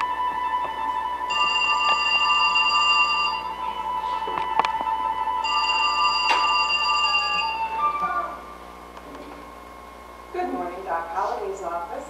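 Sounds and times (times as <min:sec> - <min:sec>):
sustained high keyboard notes: 0:00.0 - 0:08.7.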